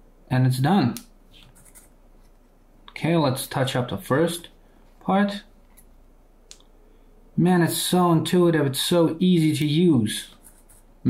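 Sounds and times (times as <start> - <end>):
faint scratching and handling: 1.3 - 2.5, 10.3 - 10.9.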